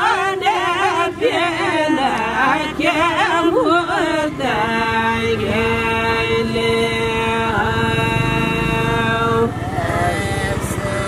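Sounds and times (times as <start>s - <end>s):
person singing unaccompanied: 0.0s - 11.0s.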